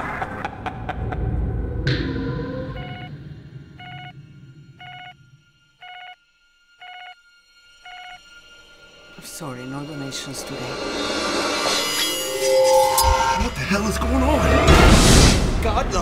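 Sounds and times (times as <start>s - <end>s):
low rumbling trailer music: 0.0s - 16.0s
pager beeping: 2.8s - 3.1s, 3.8s - 4.1s, 4.8s - 5.2s, 5.8s - 6.2s, 6.8s - 7.2s, 7.8s - 8.2s.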